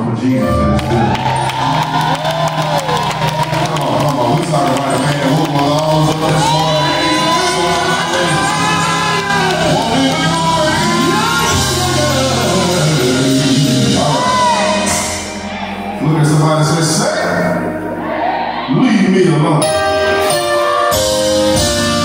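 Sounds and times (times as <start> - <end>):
gospel band with singers: 0.0 - 22.0
congregation shouting and cheering: 0.4 - 22.0.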